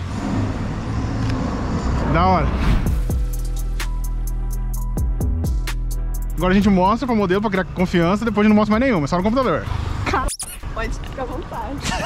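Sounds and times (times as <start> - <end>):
car driving past: 0.0 - 3.2
road traffic noise: 0.0 - 12.0.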